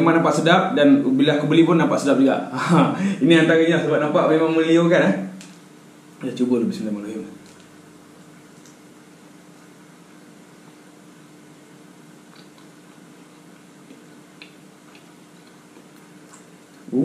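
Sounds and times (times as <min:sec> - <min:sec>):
low steady hum: 0:00.0 - 0:17.0
soft mouth clicks: 0:08.6 - 0:08.8, 0:12.2 - 0:16.9
closed-mouth chewing: 0:12.1 - 0:17.0.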